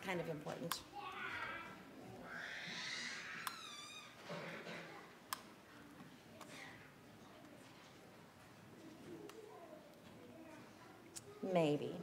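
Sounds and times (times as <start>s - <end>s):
young child squealing: 1.0s - 4.2s.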